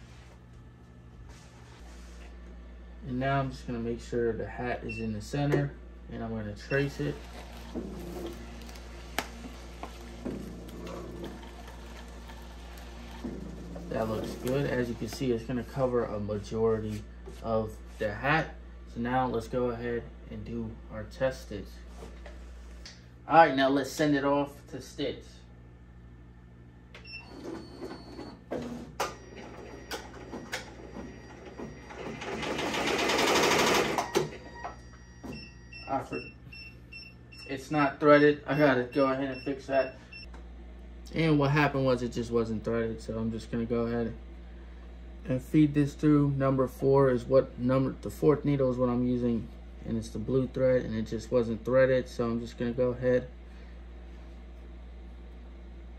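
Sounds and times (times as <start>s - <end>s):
steady low hum: 0.0s - 32.6s, 34.4s - 55.9s
embroidery machine motors whirring: 6.7s - 15.7s
embroidery machine stitching: 29.4s - 34.3s.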